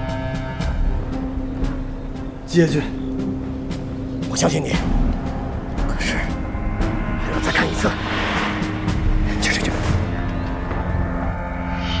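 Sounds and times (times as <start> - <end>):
tense drama music with low drone: 0.0 - 12.0
man speaking: 7.2 - 8.2, 9.2 - 10.0.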